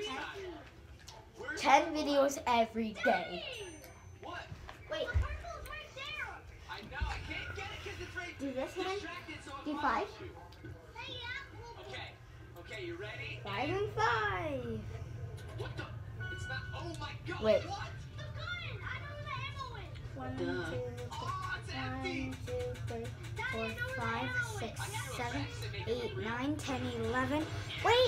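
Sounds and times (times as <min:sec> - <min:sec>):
steady low hum: 0:11.9 - 0:28.0.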